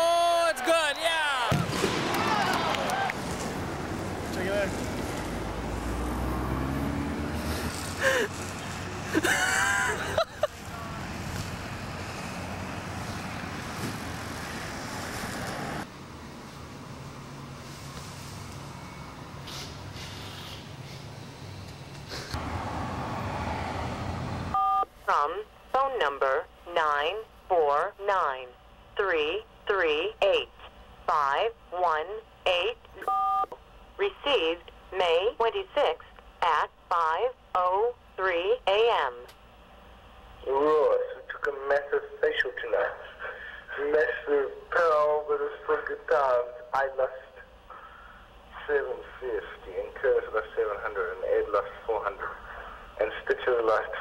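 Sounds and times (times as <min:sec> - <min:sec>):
person talking over radio: 0:34.0 - 0:39.3, 0:40.4 - 0:47.4, 0:48.6 - 0:54.0.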